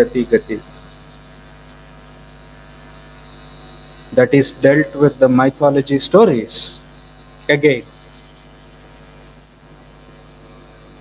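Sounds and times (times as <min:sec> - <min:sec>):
electrical mains hum: 0:00.0 - 0:11.0
faint high whine: 0:00.0 - 0:11.0.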